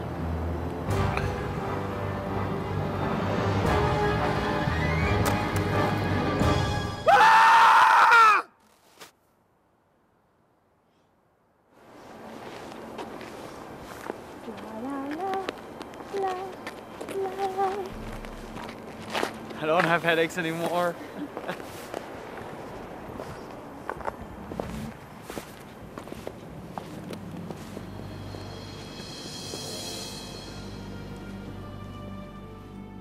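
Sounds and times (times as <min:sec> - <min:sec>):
man screaming: 0:07.0 - 0:08.5
footsteps on packed snow: 0:11.8 - 0:29.9.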